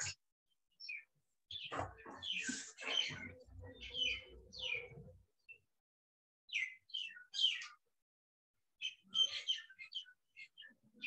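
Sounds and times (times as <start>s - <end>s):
birds chirping: 0.0s - 5.8s, 6.5s - 7.9s, 8.7s - 11.0s.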